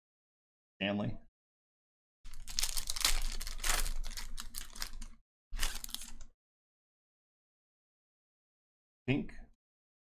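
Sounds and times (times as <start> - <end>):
foil wrapper crinkling and tearing: 2.3 - 6.3.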